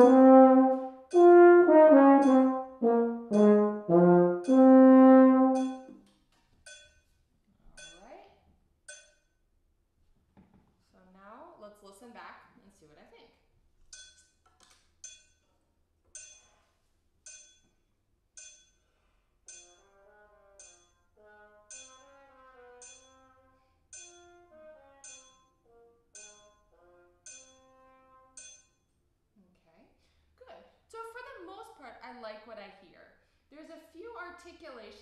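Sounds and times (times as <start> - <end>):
low brass instrument playing: 0.0 - 6.0, 24.2 - 25.0, 25.6 - 28.4.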